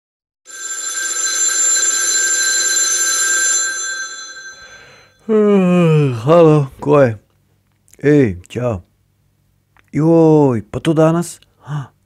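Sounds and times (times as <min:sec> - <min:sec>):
old telephone bell ringing: 0:00.5 - 0:05.2.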